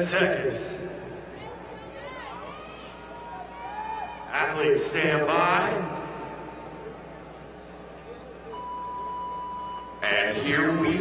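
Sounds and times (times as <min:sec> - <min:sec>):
arena hum: 0:00.0 - 0:11.0
long electronic beep: 0:08.5 - 0:10.3.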